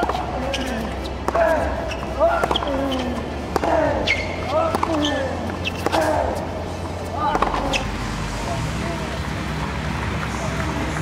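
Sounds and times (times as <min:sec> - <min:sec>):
ball bouncing: 0:00.0 - 0:06.3
tennis ball struck by rackets: 0:00.0 - 0:06.4, 0:07.3 - 0:07.8
voices: 0:00.0 - 0:11.0.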